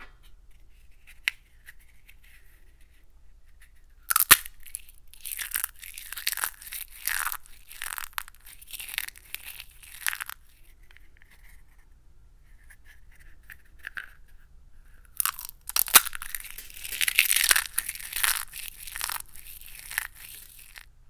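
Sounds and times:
ball crunching in a fist: 0:04.0 - 0:10.5, 0:15.2 - 0:20.9.

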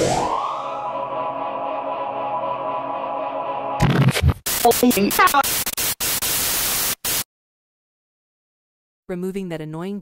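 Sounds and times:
tv static hiss: 0:04.5 - 0:07.2.

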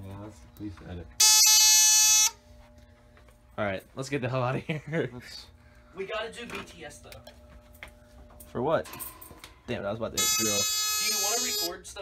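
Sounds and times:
fire alarm buzzer: 0:01.2 - 0:02.5, 0:10.1 - 0:11.8.

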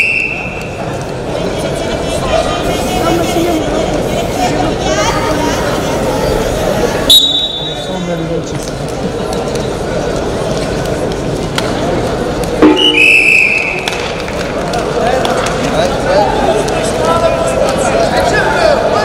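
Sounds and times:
whistle blast: 0:00.0 - 0:00.6, 0:07.1 - 0:07.9, 0:12.6 - 0:13.9
crowd chatter: 0:00.0 - 0:19.0.

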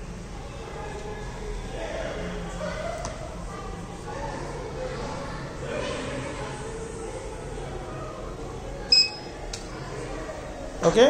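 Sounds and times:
short high electronic beep: 0:08.9 - 0:09.3.

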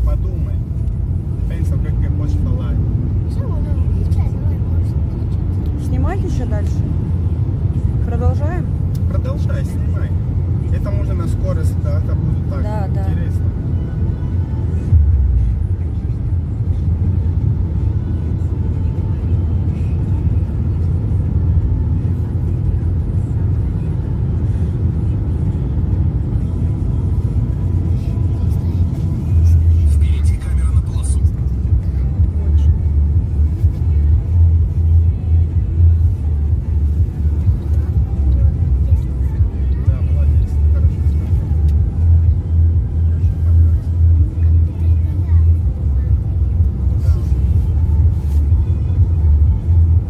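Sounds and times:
road and engine rumble in car: 0:00.0 - 0:50.0.

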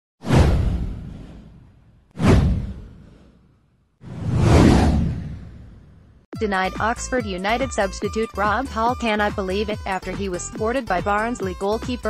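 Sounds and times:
whoosh with deep rumble: 0:00.2 - 0:06.3.

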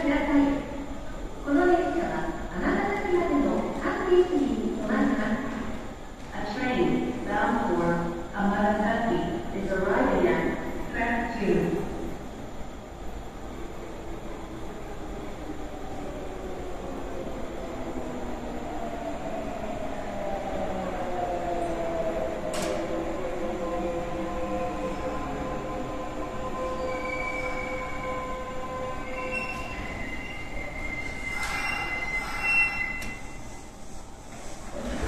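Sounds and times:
wheel and brake squeal: 0:29.1 - 0:33.7.

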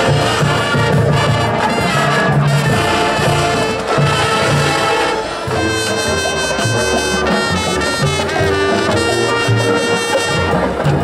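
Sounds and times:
brass melody: 0:00.0 - 0:11.0
marching drums and percussion: 0:00.0 - 0:11.0.

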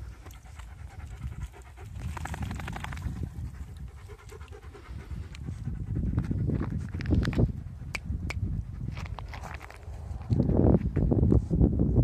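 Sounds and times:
dog panting: 0:00.0 - 0:06.6.

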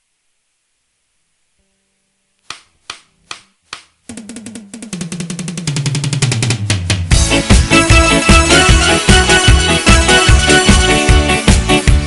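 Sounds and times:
drum roll on drum kit: 0:04.1 - 0:10.9
band playing a song: 0:06.4 - 0:12.0.

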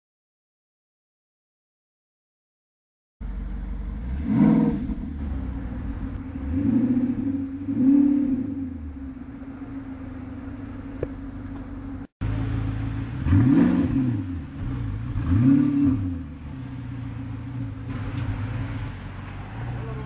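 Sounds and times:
car engine idling and revving: 0:03.2 - 0:20.0.

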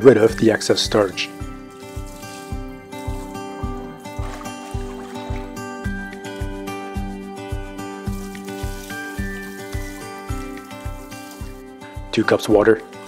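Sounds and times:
music with low beat and chords: 0:01.4 - 0:12.1.

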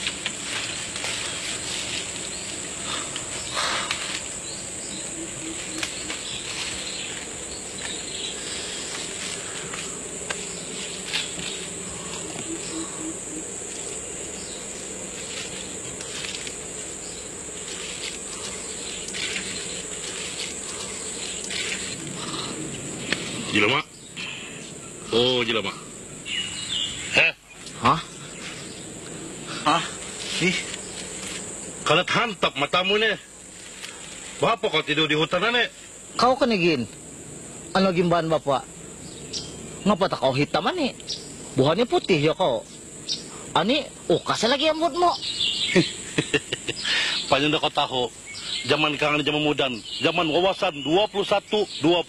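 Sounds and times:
high-pitched insect buzz: 0:00.0 - 0:52.0.

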